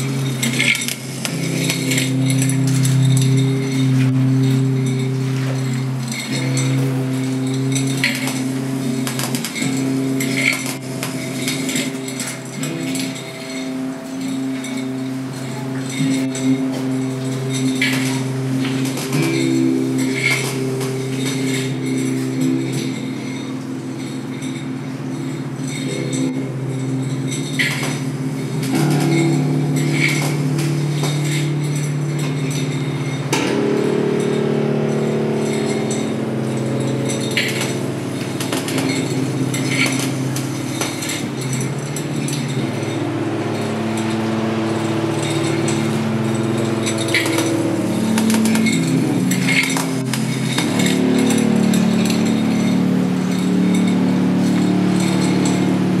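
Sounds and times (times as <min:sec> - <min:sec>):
low layered drone: 0:00.0 - 0:56.0
metallic clatter: 0:00.0 - 0:56.0
metallic clinks and crackles: 0:00.0 - 0:56.0.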